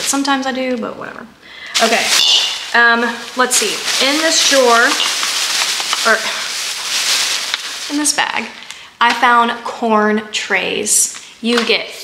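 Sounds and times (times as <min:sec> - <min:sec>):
plastic bag rustling: 0:00.0 - 0:00.5, 0:01.6 - 0:09.5.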